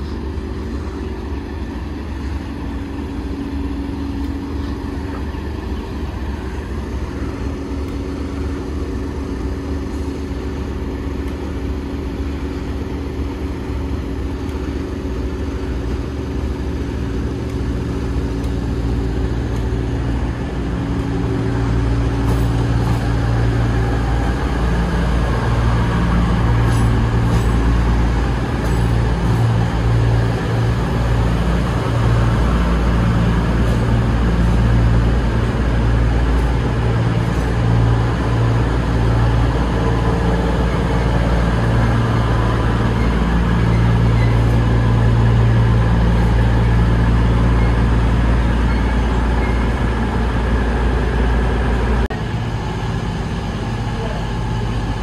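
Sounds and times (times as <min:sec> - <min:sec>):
diesel train engine humming: 0:00.0 - 0:55.0.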